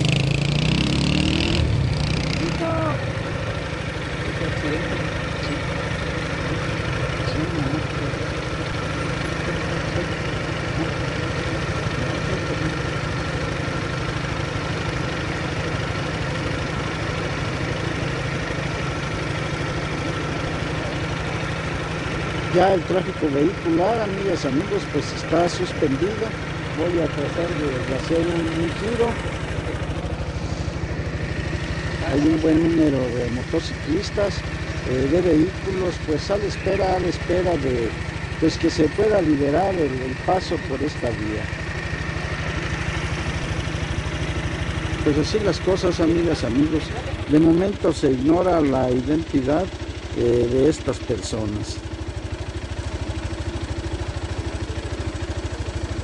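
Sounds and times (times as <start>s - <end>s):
motorcycle engine idling: 0.0s - 56.0s.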